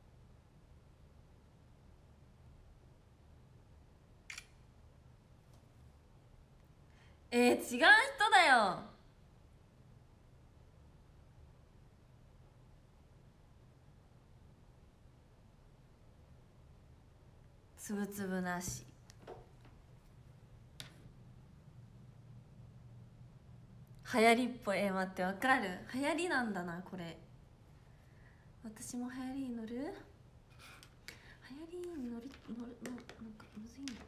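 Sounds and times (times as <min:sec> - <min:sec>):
phone camera shutter click: 0:04.3 - 0:04.6.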